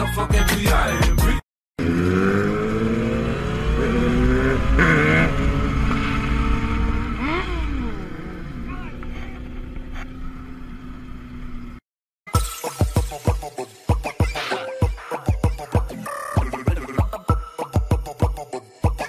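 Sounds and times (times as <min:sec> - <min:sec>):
motorcycle engine revving: 0:01.8 - 0:11.8
motorcycle engines accelerating: 0:01.8 - 0:11.8.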